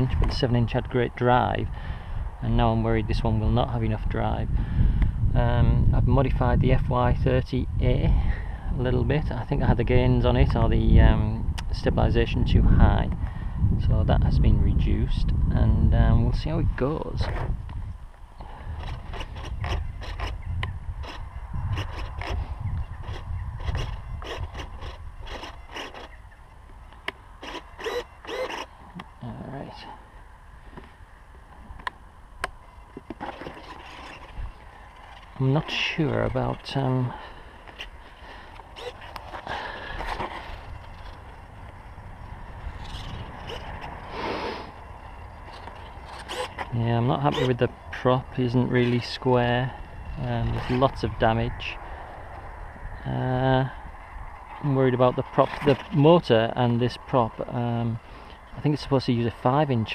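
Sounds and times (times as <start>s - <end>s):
wind buffeting microphone: 0.0s - 59.9s
gear rustling and clicking: 21.0s - 29.1s, 31.5s - 44.1s, 44.7s - 47.6s, 54.4s - 56.1s.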